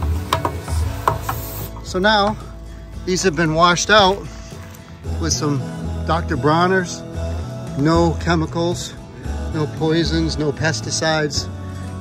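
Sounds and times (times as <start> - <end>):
sprayer motor humming: 0.0 - 2.4
water spraying inside plastic drum: 0.0 - 2.4.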